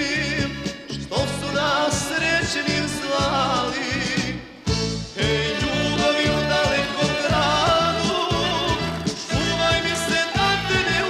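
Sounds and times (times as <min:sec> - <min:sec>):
folk band playing: 0:00.0 - 0:11.0
man singing folk song: 0:00.0 - 0:11.0.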